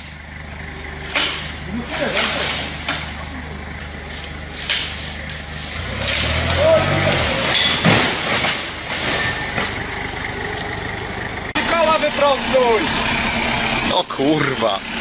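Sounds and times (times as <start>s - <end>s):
forklift engine running: 0.0s - 15.0s
pallets of bottles crashing: 1.1s - 3.3s, 4.6s - 9.9s.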